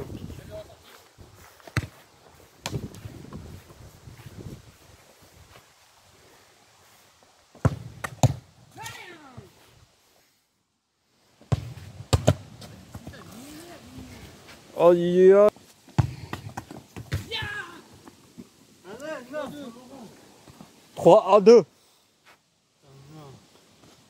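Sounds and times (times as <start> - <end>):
football being kicked: 1.7 - 2.0, 7.6 - 8.4, 11.5 - 13.2, 16.0 - 17.6.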